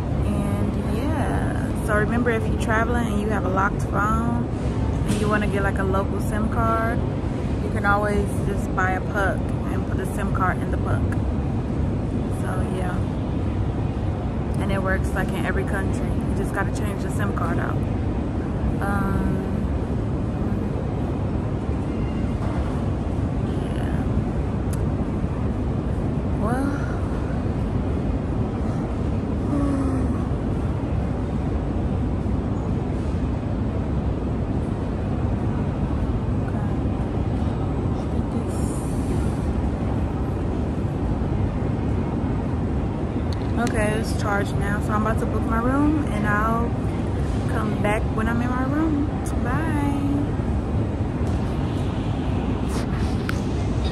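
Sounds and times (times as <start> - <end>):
airport terminal background rumble: 0.0 - 53.9.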